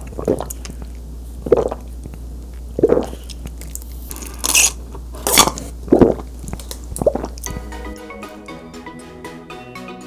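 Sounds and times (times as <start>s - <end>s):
gulping swallows: 0.0s - 1.9s, 2.8s - 3.6s, 5.8s - 7.5s.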